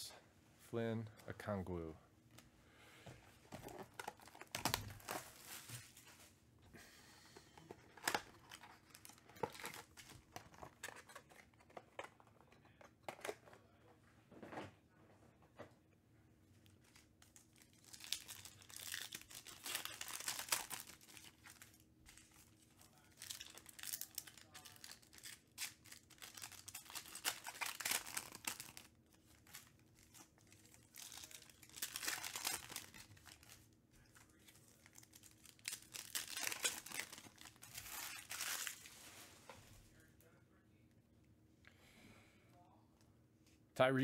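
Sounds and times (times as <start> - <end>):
foil wrappers tearing and crinkling: 3.7 - 6.0, 7.9 - 11.7, 16.8 - 39.1.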